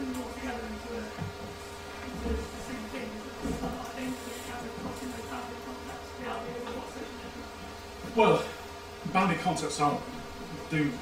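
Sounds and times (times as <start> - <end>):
faint voices: 0.0 - 11.0
steady buzzing hum: 0.0 - 11.0.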